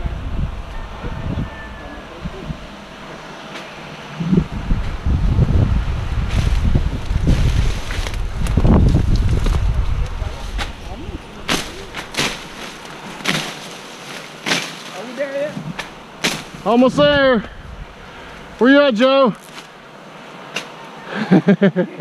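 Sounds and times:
low rumble on microphone: 0:00.0 - 0:03.4, 0:04.0 - 0:13.2
leaves and vines rustling: 0:00.0 - 0:21.3
twigs snapping and cracking: 0:06.4 - 0:10.8, 0:11.4 - 0:15.1, 0:15.8 - 0:16.6, 0:19.4 - 0:19.7.

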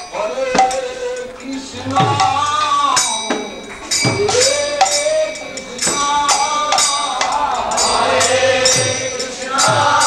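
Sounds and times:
person singing devotional song: 0:00.0 - 0:10.0.

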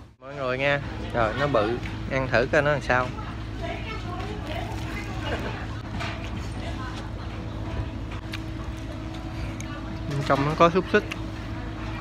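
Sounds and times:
steady low hum: 0:00.0 - 0:12.0
crunching and chewing: 0:04.0 - 0:12.0.

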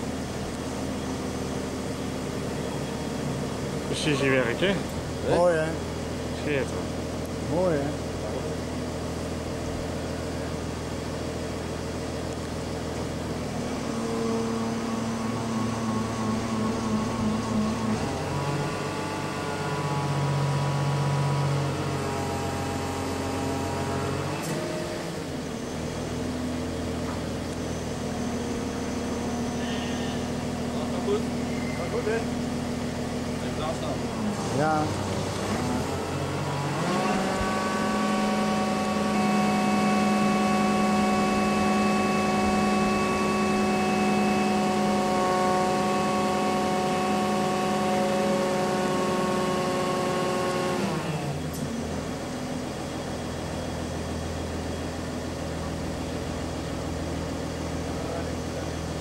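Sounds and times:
crane engine running: 0:00.0 - 0:59.0.

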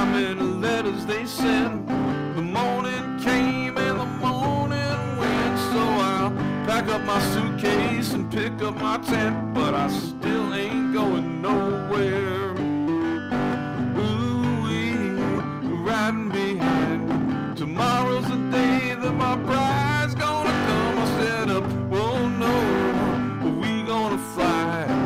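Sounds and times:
acoustic guitar strumming: 0:00.0 - 0:25.0
man singing with vibrato: 0:00.0 - 0:25.0.

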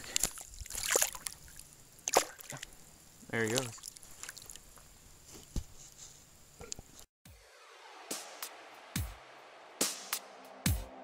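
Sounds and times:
soft wet knocks and squishes: 0:00.0 - 0:02.7, 0:03.3 - 0:05.7
river water lapping: 0:00.0 - 0:04.9.

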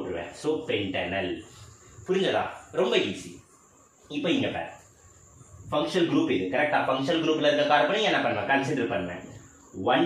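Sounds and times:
man speaking: 0:00.0 - 0:03.4, 0:05.7 - 0:10.0
faint high-pitched whine: 0:00.0 - 0:10.0.

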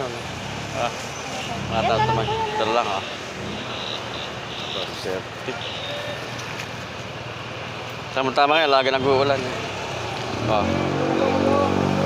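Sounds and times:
motorcycles passing: 0:00.0 - 0:12.0
street traffic hum: 0:00.0 - 0:12.0.

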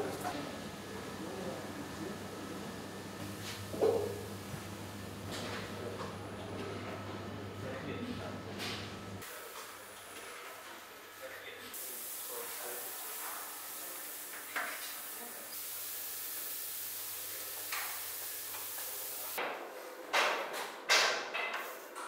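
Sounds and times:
hot tray sizzling: 0:11.8 - 0:19.4.

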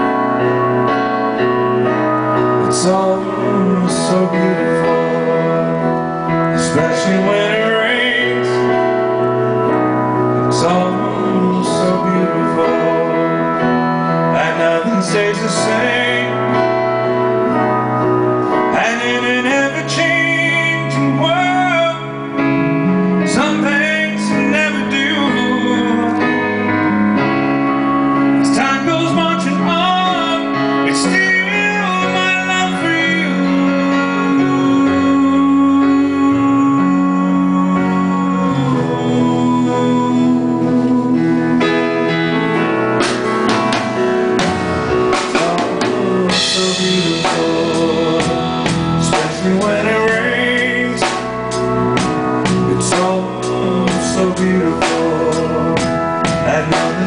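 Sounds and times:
electric bass: 0:00.0 - 0:57.0
live band playing slow song: 0:00.0 - 0:57.0
sustained keyboard chords: 0:00.0 - 0:57.0
drum kit: 0:27.3 - 0:57.0.

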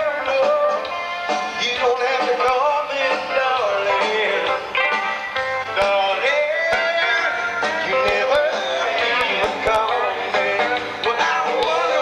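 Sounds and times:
country band playing: 0:00.0 - 0:12.0.

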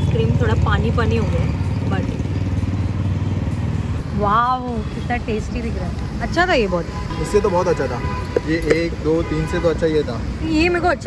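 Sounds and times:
vehicle engine running: 0:00.0 - 0:06.9.

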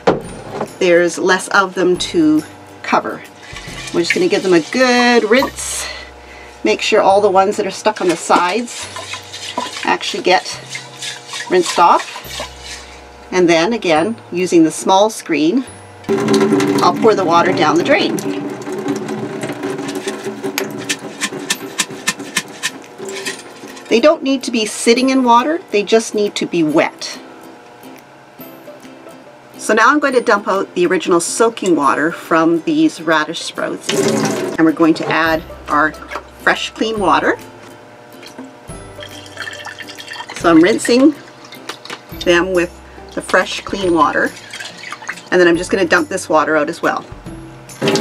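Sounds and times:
steady low hum: 0:00.0 - 0:28.4, 0:30.6 - 0:47.8
background music: 0:00.0 - 0:48.0
water pouring into steel sink: 0:16.1 - 0:23.9, 0:38.2 - 0:42.2, 0:43.0 - 0:45.4
water drips and clicks: 0:38.2 - 0:42.1, 0:44.2 - 0:45.3.

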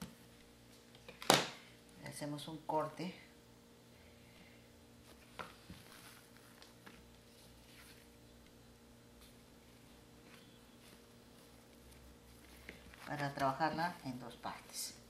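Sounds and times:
low room hum: 0:00.0 - 0:15.0.

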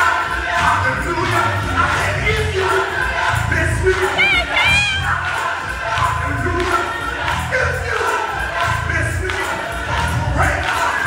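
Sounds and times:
congregation voices and cheers: 0:00.0 - 0:11.0
gospel choir with band: 0:00.0 - 0:11.0
high solo voice: 0:04.2 - 0:05.1.

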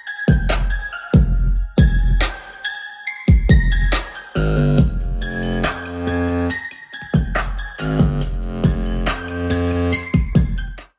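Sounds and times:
electronic music with deep bass: 0:00.0 - 0:10.9.

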